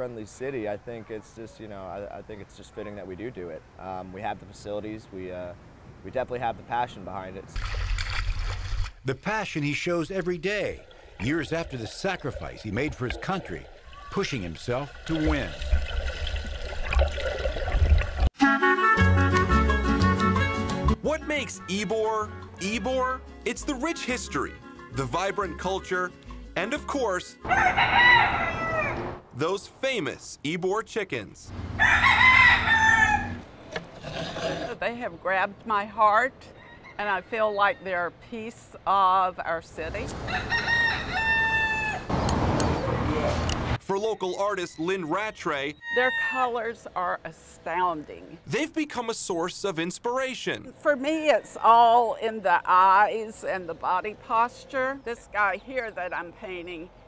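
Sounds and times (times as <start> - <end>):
pool water splashing: 7.5 - 18.3
rooster crowing: 27.4 - 29.2, 31.7 - 33.4, 40.2 - 42.1, 45.8 - 46.5.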